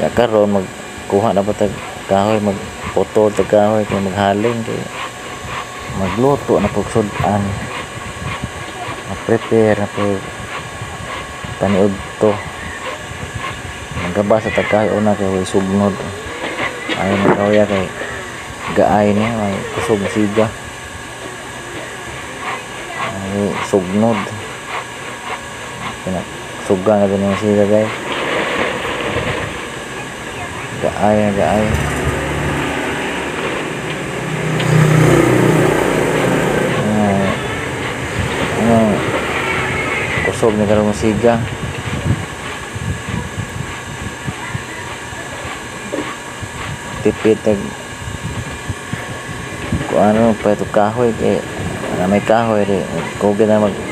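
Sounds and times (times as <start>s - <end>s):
man talking: 0.0s - 5.1s, 5.9s - 7.8s, 8.7s - 10.3s, 11.0s - 12.5s, 13.9s - 20.6s, 22.4s - 24.5s, 26.0s - 28.0s, 30.5s - 32.6s, 36.4s - 39.4s, 40.0s - 42.1s, 47.0s - 47.9s, 49.8s - 53.9s
low engine rumble: 0.0s - 53.9s.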